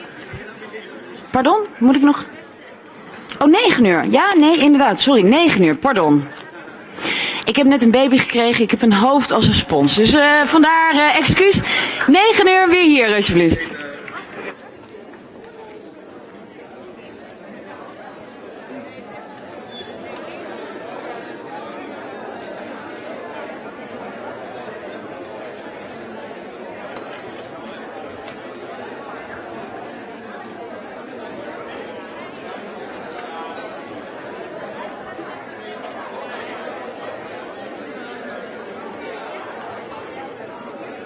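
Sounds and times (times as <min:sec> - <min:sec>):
audience chatter in a hall: 0:00.0 - 0:41.0.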